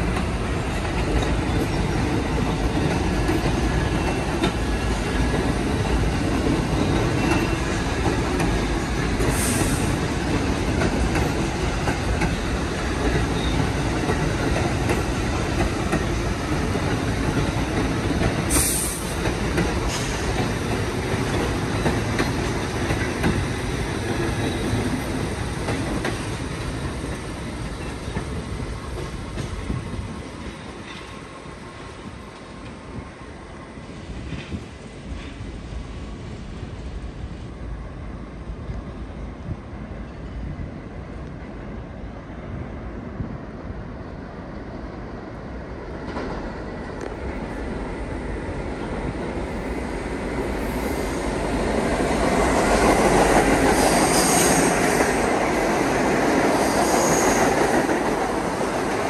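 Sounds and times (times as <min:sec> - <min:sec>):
subway train rumbling on rails: 0:00.0 - 0:59.0.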